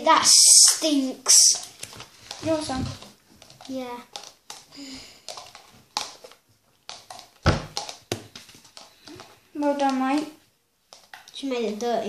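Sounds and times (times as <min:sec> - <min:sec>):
plastic cup taps and clicks: 0:01.5 - 0:10.3.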